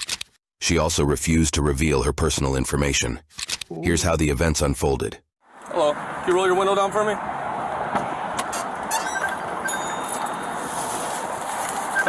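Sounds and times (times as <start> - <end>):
wind and traffic hiss: 5.4 - 12.0.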